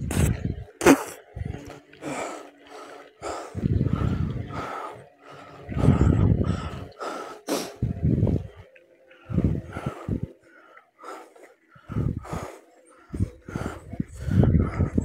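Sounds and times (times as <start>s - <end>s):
wind gusts on microphone: 0.0s - 1.7s, 3.5s - 4.8s, 5.6s - 7.0s, 7.8s - 10.3s, 11.9s - 12.4s, 13.1s - 15.0s
woman breathing heavily: 2.0s - 8.4s, 9.2s - 15.0s.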